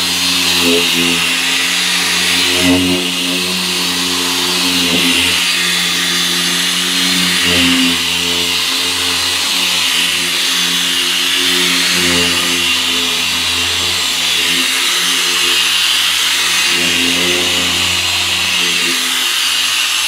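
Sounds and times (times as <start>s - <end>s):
electric polisher motor hum and whine: 0.0s - 20.0s.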